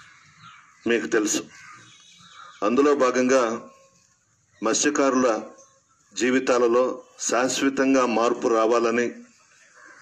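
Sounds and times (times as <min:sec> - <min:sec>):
faint harsh bird calls: 0:00.0 - 0:10.0
man speaking into a microphone: 0:00.8 - 0:01.5, 0:02.6 - 0:03.8, 0:04.6 - 0:05.6, 0:06.2 - 0:09.4.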